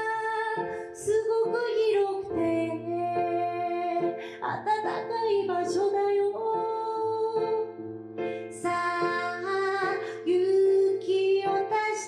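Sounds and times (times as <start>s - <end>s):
woman singing: 0.0s - 7.8s, 8.4s - 12.0s
piano: 0.0s - 12.0s.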